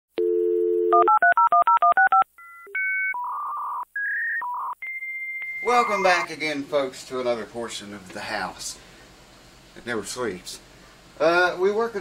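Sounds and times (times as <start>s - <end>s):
electronic line tones: 2.1s - 6.2s.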